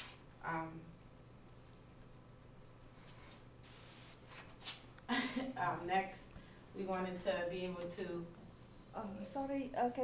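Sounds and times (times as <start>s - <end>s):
high-pitched electronic beep: 3.6s - 4.2s.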